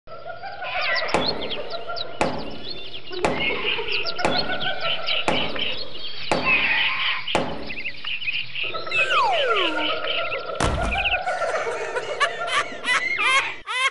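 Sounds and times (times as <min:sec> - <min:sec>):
birdsong: 0:00.1 - 0:13.9
descending whistle: 0:08.9 - 0:10.0.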